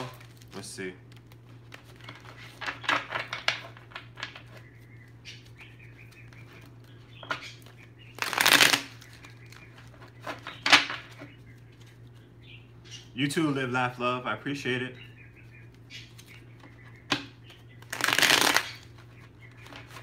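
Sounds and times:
cards shuffling and rustling: 0:00.0 - 0:04.7, 0:05.4 - 0:12.3, 0:17.4 - 0:20.0
steady low hum: 0:00.0 - 0:20.0.

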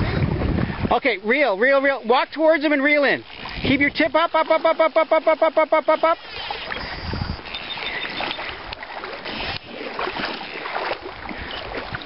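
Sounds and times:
water sloshing and splashing: 0:00.0 - 0:12.0.

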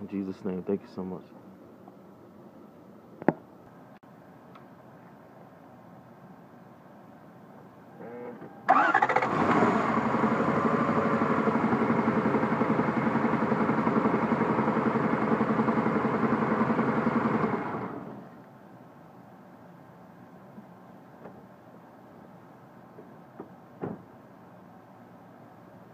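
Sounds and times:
car engine cranking and idling: 0:08.7 - 0:18.4.

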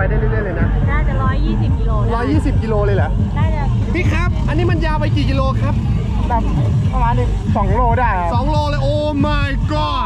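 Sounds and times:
low rumble: 0:00.0 - 0:10.0
voices talking: 0:00.0 - 0:10.0.

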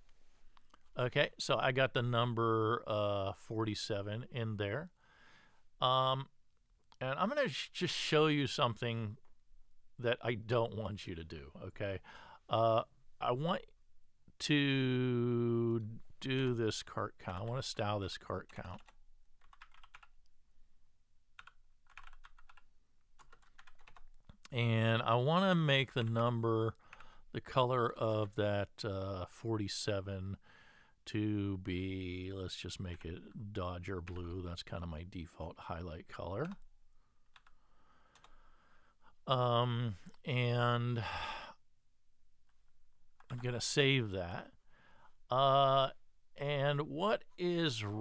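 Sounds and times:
typing on computer keyboard: 0:18.5 - 0:20.1, 0:21.4 - 0:24.1.

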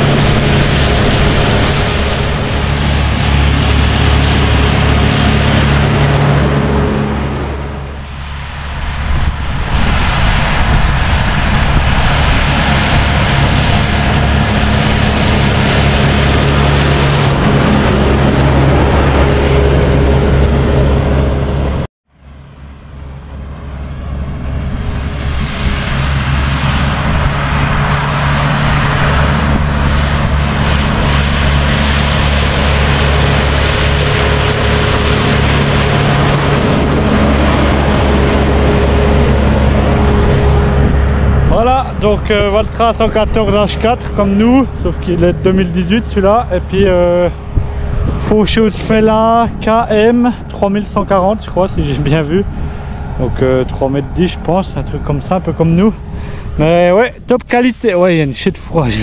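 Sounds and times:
tractor engine running under load: 0:00.0 - 0:24.8, 0:25.6 - 0:54.1.

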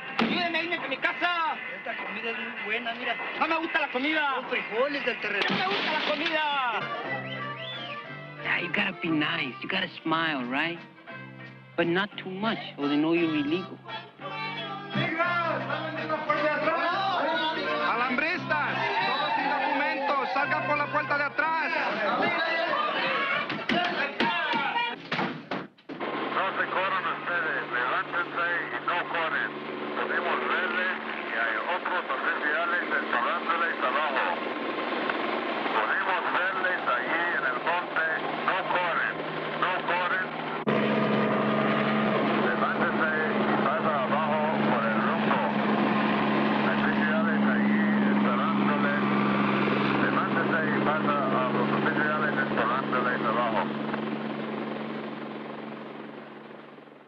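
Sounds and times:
voices shouting: 0:13.9 - 0:25.0
helicopter running: 0:14.4 - 0:24.2, 0:26.0 - 0:57.0.

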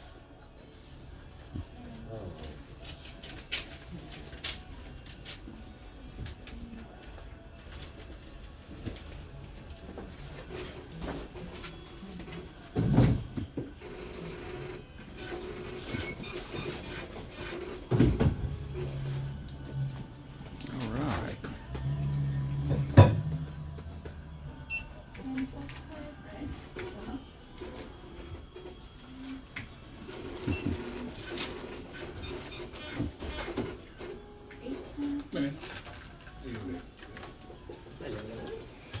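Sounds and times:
printer printing: 0:03.4 - 0:20.9, 0:24.5 - 0:35.1.

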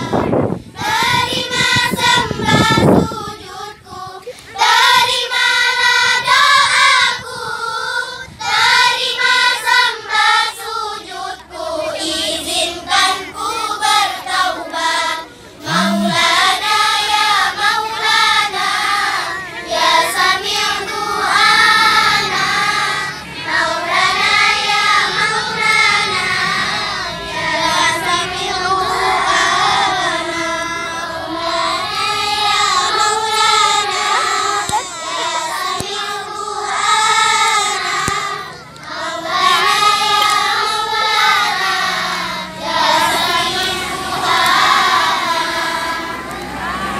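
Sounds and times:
children singing in unison: 0:00.0 - 0:46.9.

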